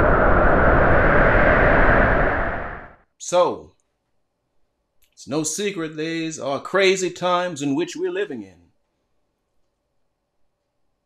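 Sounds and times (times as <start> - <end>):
wind rushing: 0.0 - 3.0.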